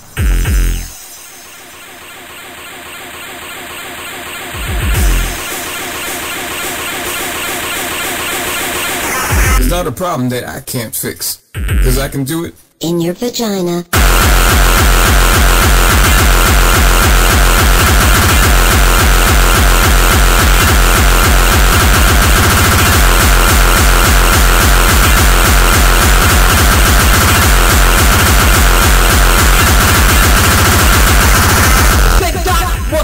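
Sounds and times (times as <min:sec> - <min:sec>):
fast electronic dance music: 0:00.2 - 0:09.8, 0:11.6 - 0:12.2, 0:14.0 - 0:33.0.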